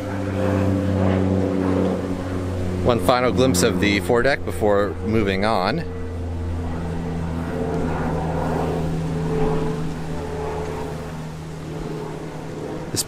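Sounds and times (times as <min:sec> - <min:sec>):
low engine hum: 0:00.0 - 0:13.0.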